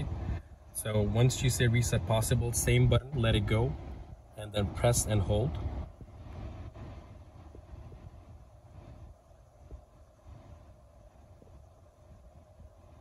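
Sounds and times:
faint car cabin hum: 0.0s - 13.0s.

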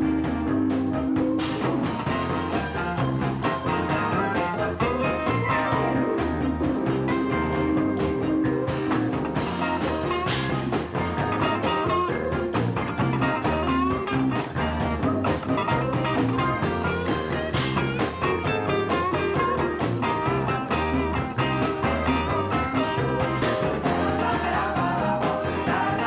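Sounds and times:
bass and drums beat: 0.0s - 26.0s
electric guitar: 0.0s - 26.0s.

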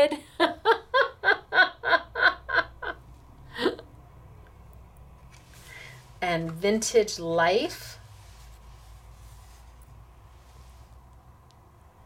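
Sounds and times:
woman laughing: 0.0s - 3.8s.

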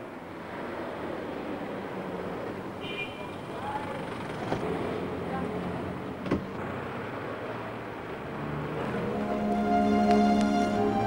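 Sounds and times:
city traffic hum: 0.0s - 11.0s.

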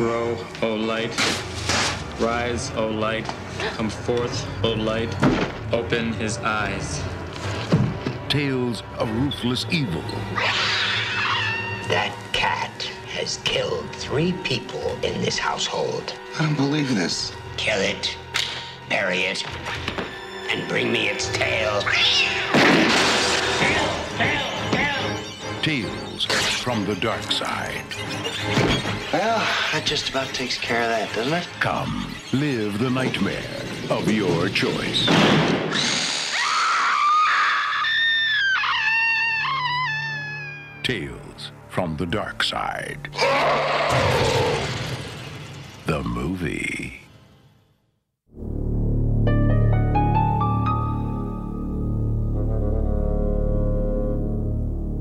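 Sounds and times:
cat hissing and yowling: 10.4s - 11.8s, 35.8s - 40.8s
shrill wavering scream: 10.4s - 11.9s, 35.7s - 40.9s, 43.2s - 44.7s
music with low sustained note: 11.8s - 22.4s, 48.4s - 55.0s
low music drone: 48.3s - 55.0s.

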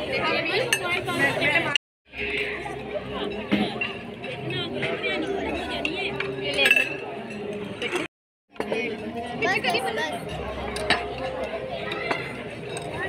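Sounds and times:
people chattering: 0.0s - 13.0s
plates and cutlery clinking: 3.2s - 13.0s.

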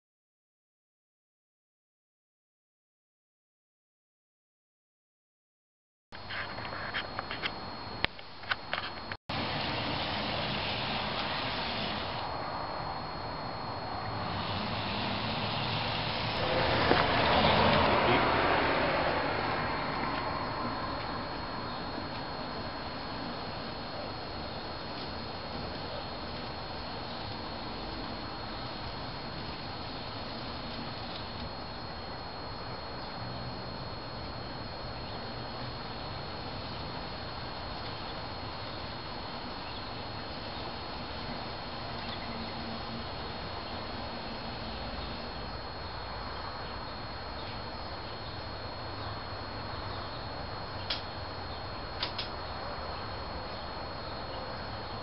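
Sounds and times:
model train whirring on rails: 9.3s - 12.3s, 14.0s - 21.1s
sharp clicks: 50.8s - 51.1s, 52.0s - 52.4s.

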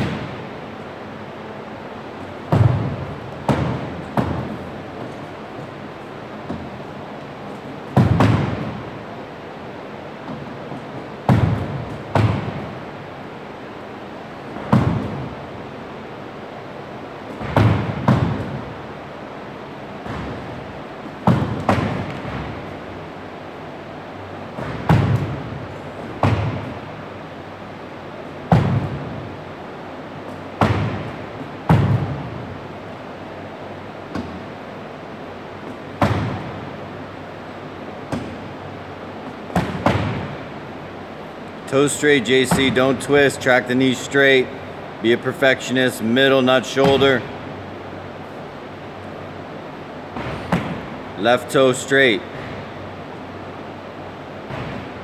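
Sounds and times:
balls thudding against gym wall: 0.0s - 44.1s, 46.7s - 51.3s, 52.1s - 55.0s.

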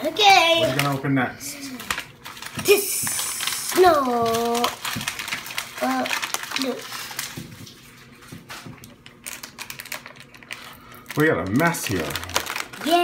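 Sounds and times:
foil packets crinkling: 0.6s - 13.0s.

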